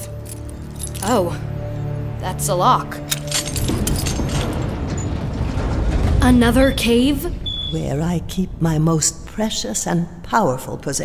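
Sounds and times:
key jangling and turning in lock: 0.0 - 1.2, 3.0 - 5.1
wall sliding with grinding rumble: 3.4 - 11.0.

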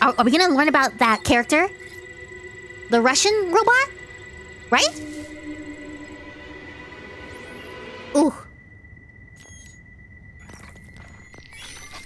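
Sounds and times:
low rumble: 0.0 - 10.9
steady high-pitched tone: 0.0 - 11.5.

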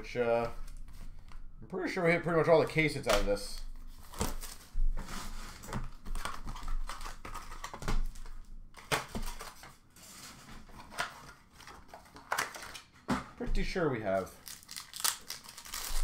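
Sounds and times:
card packs rustling: 2.0 - 13.0, 13.6 - 16.0.

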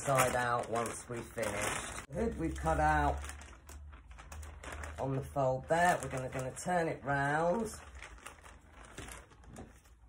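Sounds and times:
plastic sheet rustling: 0.0 - 10.0.

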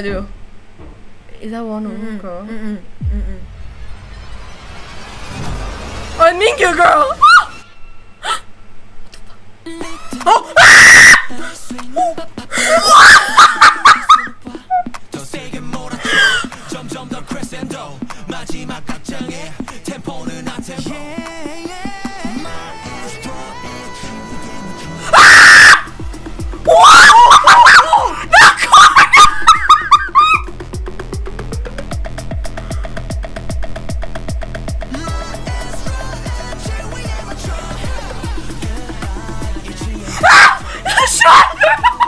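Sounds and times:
high shrieks and squeals: 7.0 - 8.6
young women screaming: 7.1 - 7.6, 10.3 - 11.4, 12.6 - 14.3, 24.9 - 26.0, 26.6 - 30.5, 40.1 - 42.0
laughter: 12.7 - 14.9, 26.9 - 30.5, 40.8 - 42.0
pop music with steady beat: 14.4 - 25.2, 25.8 - 26.8, 30.4 - 42.0
quiet music: 30.0 - 42.0.

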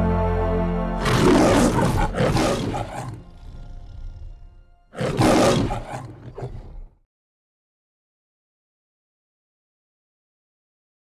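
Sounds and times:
held orchestral chord: 0.0 - 2.2
lion roaring: 1.0 - 7.0.

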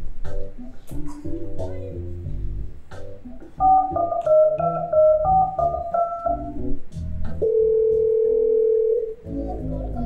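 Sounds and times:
electronic organ keyboard music: 2.9 - 10.0.

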